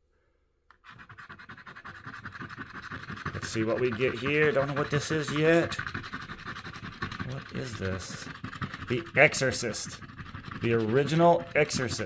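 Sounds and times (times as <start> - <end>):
scraping coating off a poster: 0.8 - 12.0.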